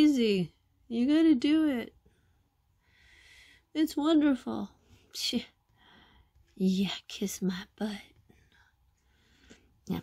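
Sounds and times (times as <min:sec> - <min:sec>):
woman speaking: 0:00.0 - 0:02.0, 0:03.7 - 0:05.6, 0:06.6 - 0:08.2.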